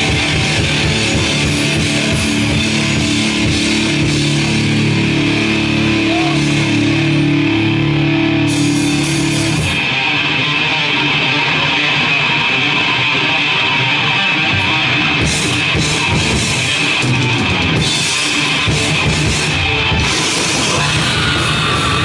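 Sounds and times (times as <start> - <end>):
metal band playing live: 0.0 - 22.0.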